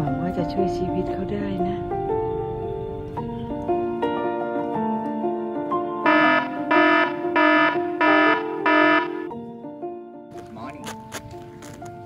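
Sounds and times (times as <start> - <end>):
background music: 0.0 - 12.0
electronic alarm beeps: 6.0 - 9.3.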